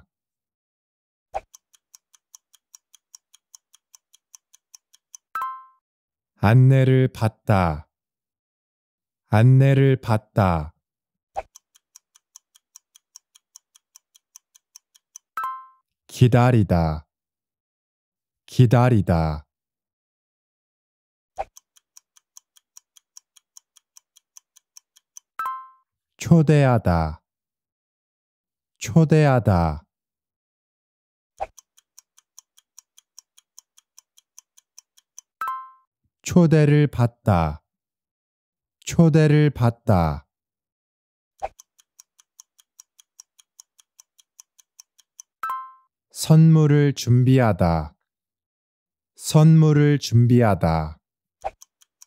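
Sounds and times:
clock ticking: 1.4 - 5.6, 11.4 - 15.6, 21.4 - 25.6, 31.4 - 35.7, 41.4 - 45.7, 51.4 - 52.0.

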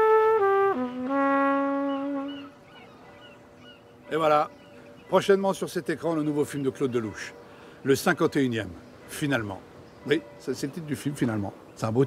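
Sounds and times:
trumpet note: 0.0 - 2.5
faint bird chirps: 1.8 - 12.0.

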